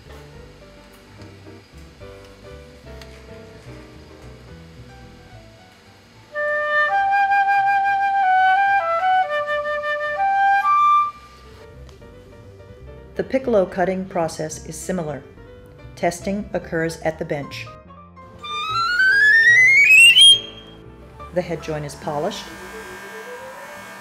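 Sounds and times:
soft background music: 0.0s - 24.0s
flute phrase: 18.4s - 20.8s.

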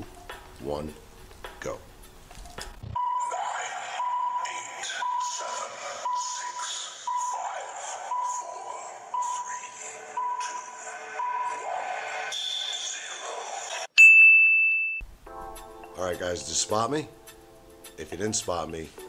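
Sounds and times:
background music: 0.0s - 13.9s, 15.0s - 19.0s.

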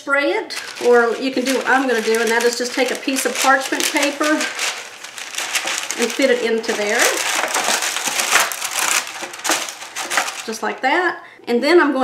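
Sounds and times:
parchment paper crinkling: 0.5s - 11.0s.

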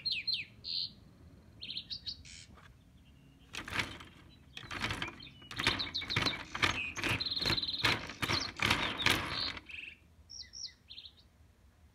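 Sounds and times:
birdsong: 0.0s - 11.4s
wooden blocks clattering: 3.5s - 9.7s.

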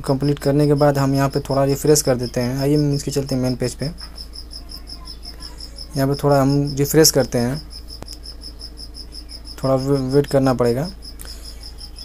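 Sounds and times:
insect chirping: 0.0s - 12.0s
low steady hum: 0.0s - 12.0s.

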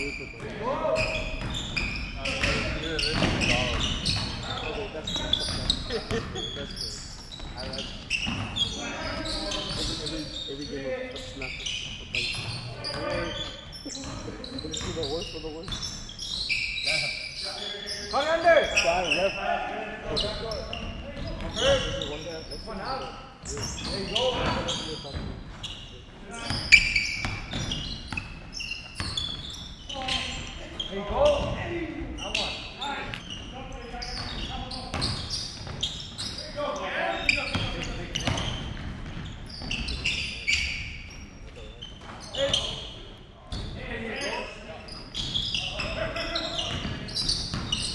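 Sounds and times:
sneaker squeaks: 0.0s - 47.9s.

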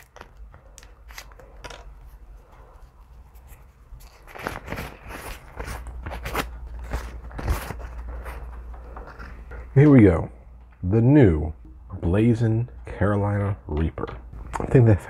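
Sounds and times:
wipe packet tearing and crinkling: 0.0s - 2.2s, 2.8s - 8.5s.

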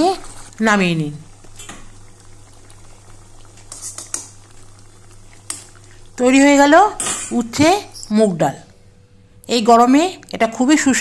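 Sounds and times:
lentils simmering and bubbling: 0.0s - 9.1s
steady low hum: 0.0s - 11.0s.

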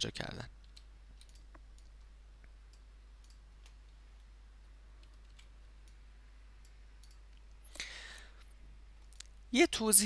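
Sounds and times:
computer mouse clicks: 0.6s - 4.3s, 5.0s - 9.4s.

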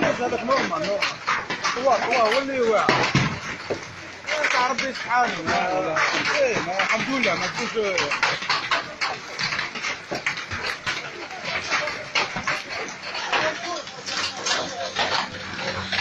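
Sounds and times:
hailstones clattering on cars: 0.0s - 16.0s.

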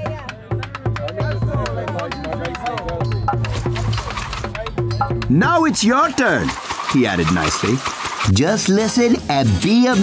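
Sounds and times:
quick drum rhythm: 0.0s - 10.0s
steady bass line: 1.4s - 6.6s.

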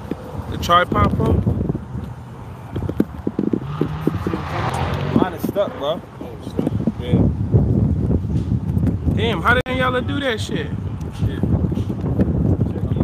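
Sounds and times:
voices: 3.7s - 7.3s.

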